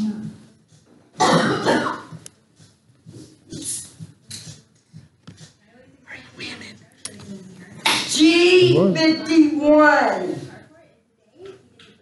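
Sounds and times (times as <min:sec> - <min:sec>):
person coughing: 0:01.2 - 0:02.2.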